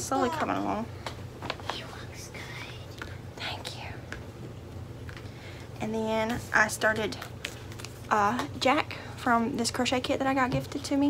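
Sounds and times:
woman whispering: 1.6 - 4.0.

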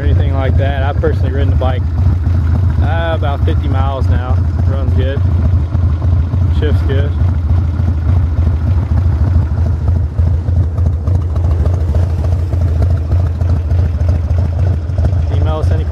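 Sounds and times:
motorcycle engine idling: 0.0 - 15.9.

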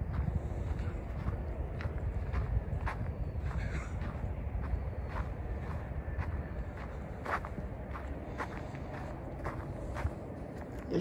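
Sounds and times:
steady low rumble: 0.0 - 11.0
footsteps walking: 0.1 - 11.0.

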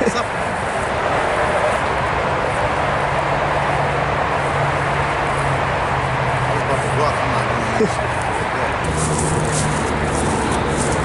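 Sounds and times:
highway traffic rushing: 0.0 - 11.0
low engine hum: 1.6 - 11.0.

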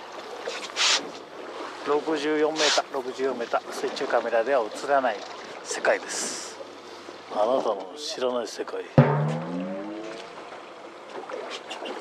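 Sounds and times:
water noise: 0.0 - 7.8, 8.9 - 12.0
wind: 0.0 - 12.0
gliding pitched tone: 9.0 - 10.4.

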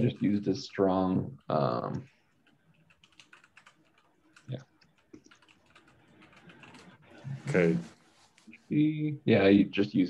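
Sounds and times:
computer keyboard typing: 1.4 - 7.0.

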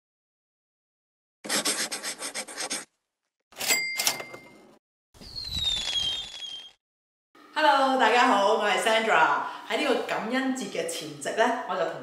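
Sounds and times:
scratchy pen scribble: 1.4 - 2.9
swoosh with falling whistle: 5.2 - 6.8.

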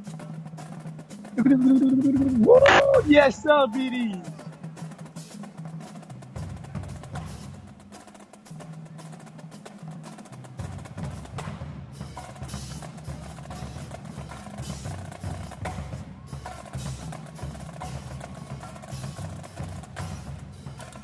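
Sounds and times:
snare and tenor drums: 0.0 - 21.0
bass drums: 1.4 - 4.4.

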